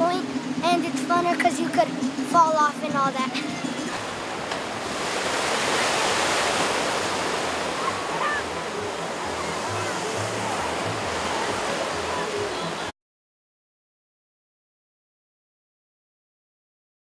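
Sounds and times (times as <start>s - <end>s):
water rushing and churning: 0.0s - 12.9s.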